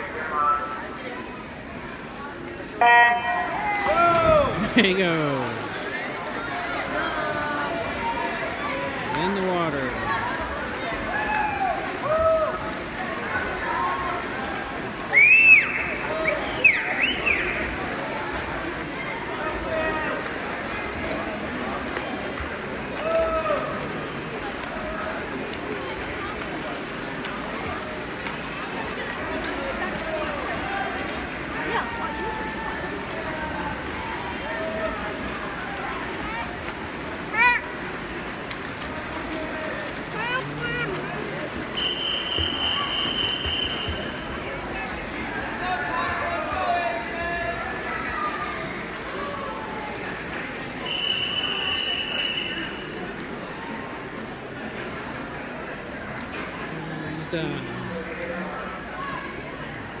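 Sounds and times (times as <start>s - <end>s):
crowd noise: 0.0s - 60.0s
spectators shouting and cheering: 2.8s - 18.4s, 22.6s - 25.4s, 38.8s - 50.2s
splashing water: 2.8s - 46.2s.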